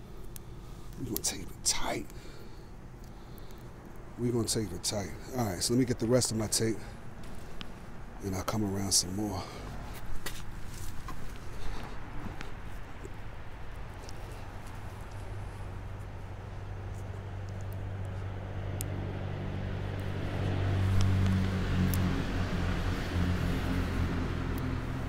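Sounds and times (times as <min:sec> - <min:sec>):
vehicle engine humming: 0:00.0 - 0:25.0.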